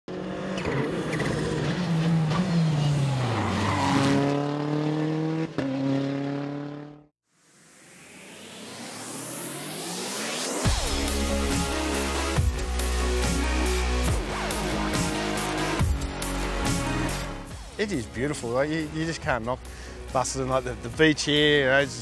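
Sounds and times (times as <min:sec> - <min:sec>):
rally car engine revving: 0:00.1 - 0:07.1.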